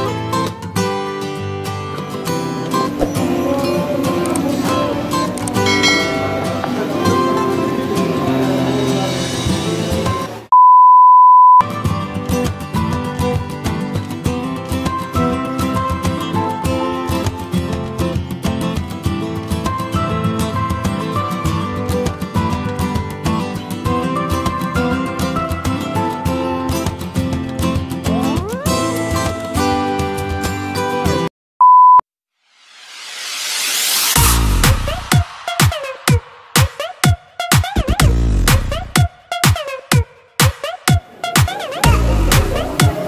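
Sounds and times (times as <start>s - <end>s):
background music: 0.0s - 10.5s, 34.1s - 43.0s
high electronic beep tone: 10.5s - 11.6s, 31.6s - 32.0s.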